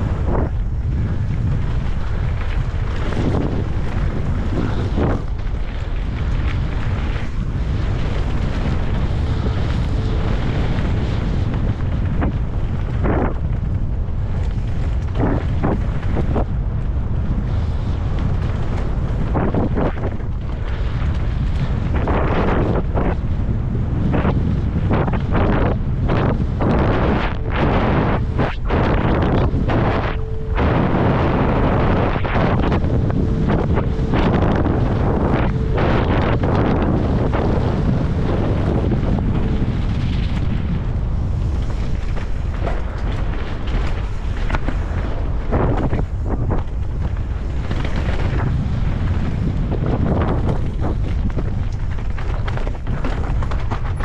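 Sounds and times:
tyre rumble: 0.0 - 54.0
wind buffeting microphone: 0.0 - 54.0
bike knocking and rattling: 32.8 - 54.0.

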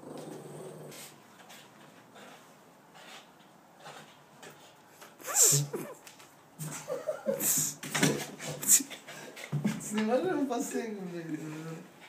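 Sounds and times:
dog growling low: 0.0 - 1.2.

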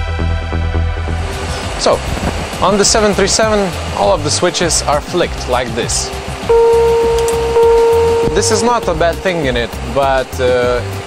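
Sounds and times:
low chimes: 6.5 - 10.5.

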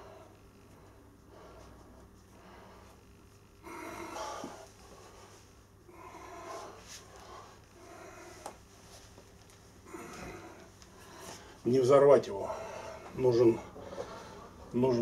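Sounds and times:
man breathing forcefully: 0.0 - 8.6, 9.8 - 11.6, 12.3 - 14.7.

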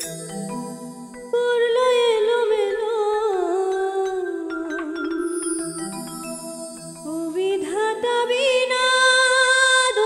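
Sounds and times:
keyboard backing: 0.0 - 9.9
woman singing with vibrato: 0.8 - 5.2, 7.0 - 10.0.

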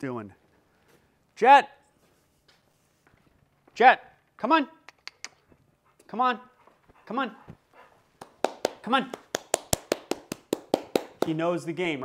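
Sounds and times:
quick hand claps: 8.2 - 11.4.

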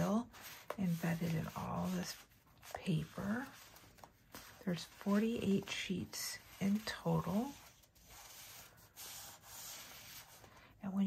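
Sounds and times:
paper sheets rustling: 0.0 - 10.7.

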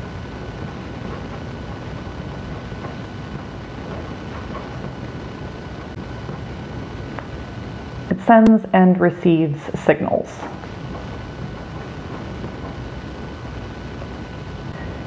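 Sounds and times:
low rumbling: 0.0 - 9.7, 10.3 - 15.0
faint high-pitched whine: 0.0 - 15.0.

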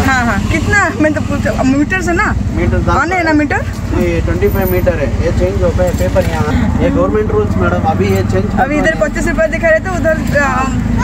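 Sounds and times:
auto-rickshaw engine running: 0.0 - 11.0.

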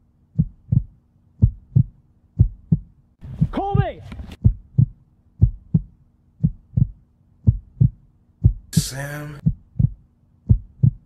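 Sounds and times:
faint steady hum: 0.0 - 11.0
heartbeat double thumps: 0.3 - 11.0.

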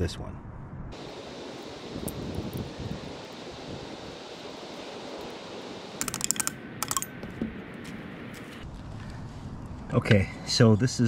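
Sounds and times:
wind rumble on microphone: 0.0 - 4.6
hand tools clicking and tapping: 6.0 - 7.6.

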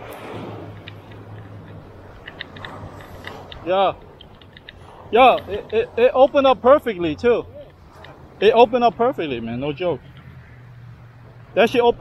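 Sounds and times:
surf washing over sand: 0.0 - 9.9.

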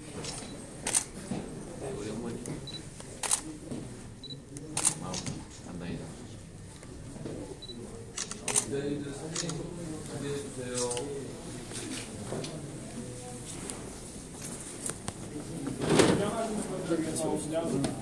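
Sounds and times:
murmured conversation: 0.0 - 18.0
camera shutters clicking: 0.2 - 1.1, 3.0 - 3.5, 4.7 - 5.6, 8.2 - 8.7, 9.3 - 9.6.

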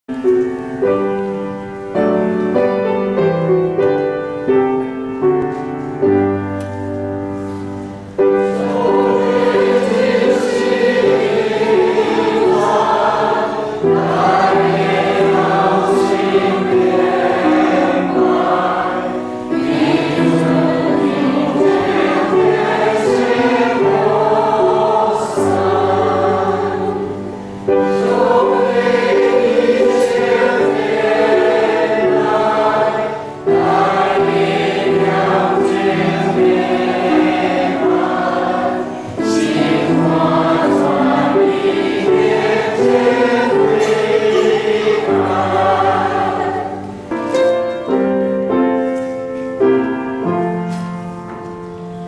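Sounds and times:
congregation singing a hymn: 0.1 - 52.0.

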